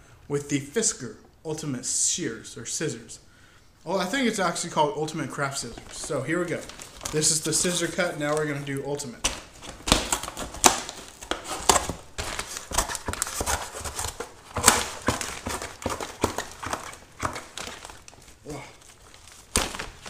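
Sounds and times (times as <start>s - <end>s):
plastic wrap crinkling: 5.3s - 20.0s
scissors snipping cardboard: 9.3s - 17.5s.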